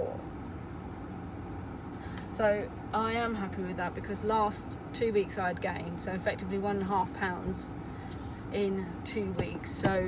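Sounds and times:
vehicle rumble inside car: 0.0s - 10.0s.

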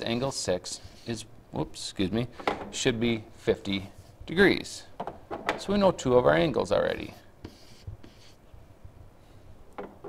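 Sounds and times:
stylus scratching on tablet: 6.9s - 8.4s.

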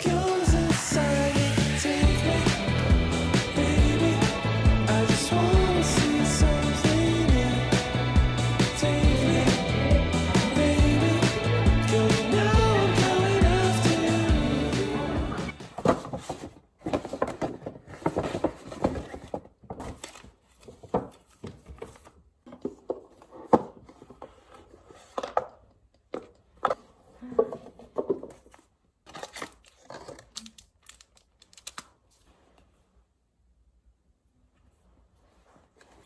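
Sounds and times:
cardboard box rustling: 15.7s - 23.3s.

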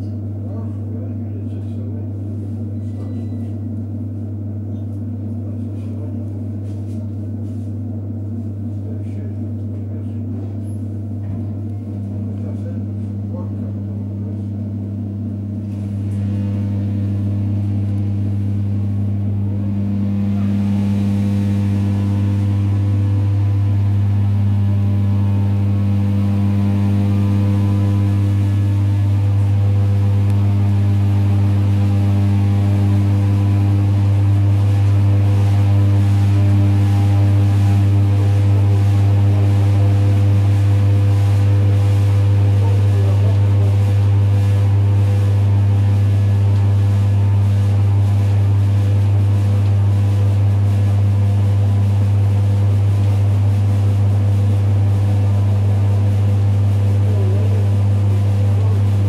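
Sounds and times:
train electrical hum: 0.0s - 59.0s.

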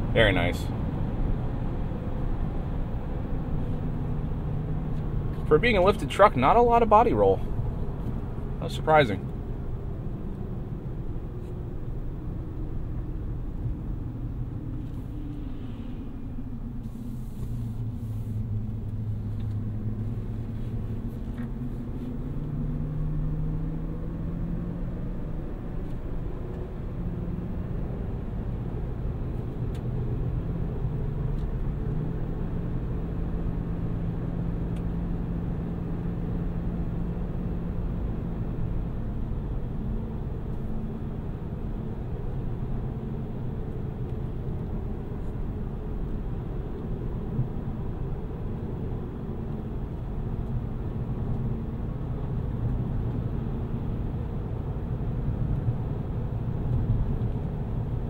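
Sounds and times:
tyre and road noise: 0.0s - 58.0s.

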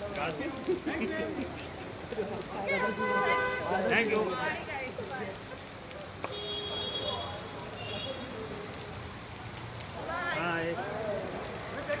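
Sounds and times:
falling rain hiss: 0.0s - 12.0s.

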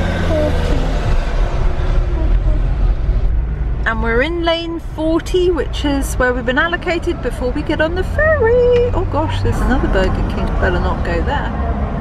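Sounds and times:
low hum: 0.0s - 11.4s
car engine and tyre noise: 0.0s - 12.0s
faint voices: 1.8s - 3.2s.

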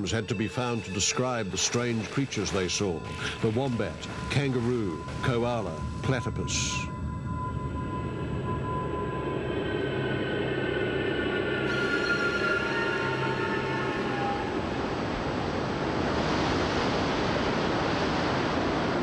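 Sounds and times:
eerie music of held tones: 0.0s - 16.2s
rushing wind and surf: 0.0s - 19.0s.

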